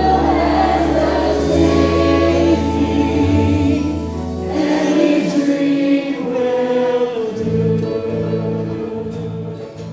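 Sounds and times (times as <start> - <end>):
choir singing with accompaniment: 0.0 - 9.9.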